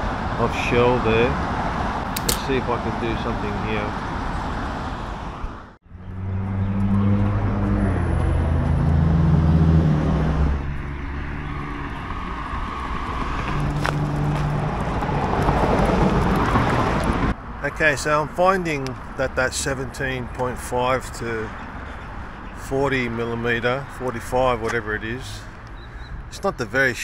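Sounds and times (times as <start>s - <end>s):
vehicles passing on road: 0.0s - 27.0s
sharp click: 2.1s - 2.6s.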